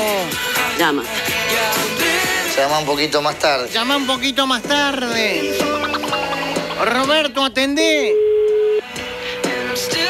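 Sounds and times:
faint background music: 0:00.0 - 0:10.0
telephone ringback beep: 0:08.0 - 0:08.8.

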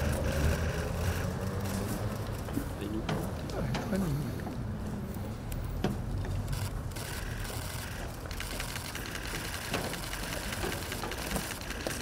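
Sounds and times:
camera shutters clicking: 0:06.3 - 0:12.0.

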